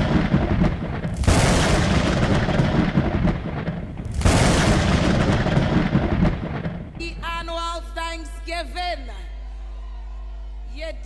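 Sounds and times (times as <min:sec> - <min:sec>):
thunderclap: 0:00.0 - 0:07.5.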